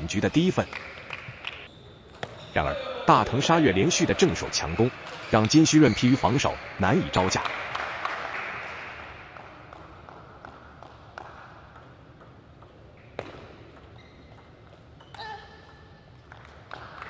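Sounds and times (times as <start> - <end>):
hall applause: 2.6 - 9.6.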